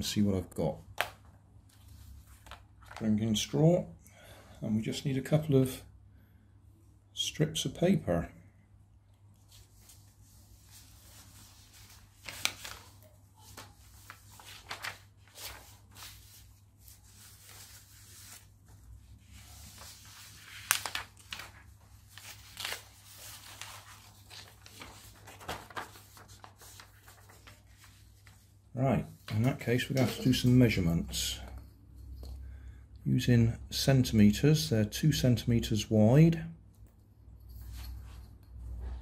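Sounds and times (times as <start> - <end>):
paper rustling and crackling: 1.0 - 3.0, 9.4 - 28.6.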